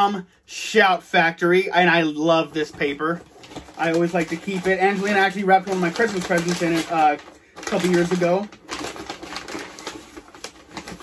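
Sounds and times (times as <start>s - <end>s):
wrapping paper crinkling and tearing: 2.6s - 11.0s.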